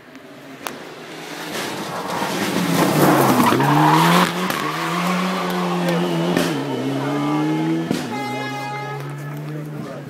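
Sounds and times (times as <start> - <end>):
rally car engine passing: 0.3 - 10.0.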